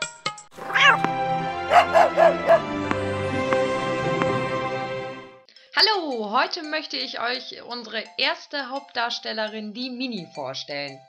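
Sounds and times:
background music: 0.0s - 11.0s
cat meowing: 0.6s - 1.1s.

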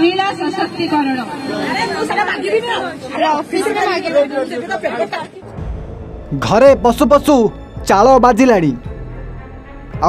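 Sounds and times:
people talking over one another: 0.0s - 7.5s.

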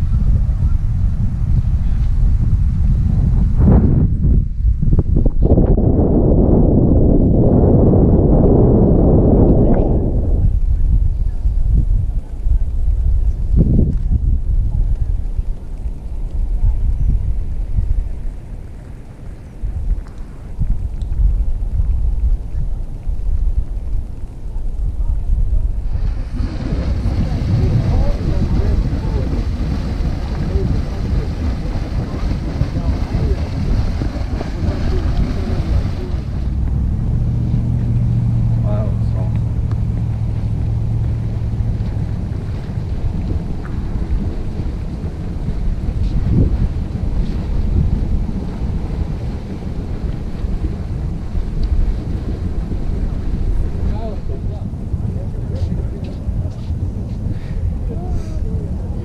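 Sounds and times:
steady low hum: 0.0s - 59.0s
wind rumbling on microphone: 0.0s - 59.0s
hissing rush: 25.8s - 36.6s.

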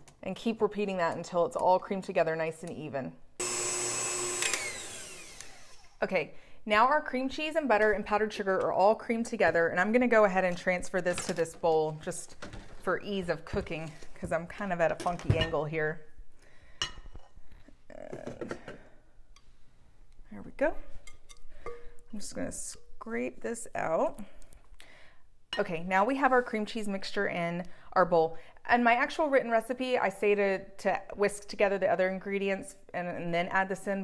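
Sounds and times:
stand mixer whirring: 3.4s - 5.8s.

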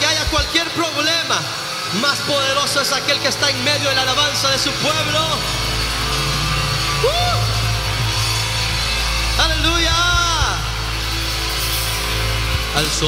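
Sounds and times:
worship band playing: 0.0s - 13.0s.

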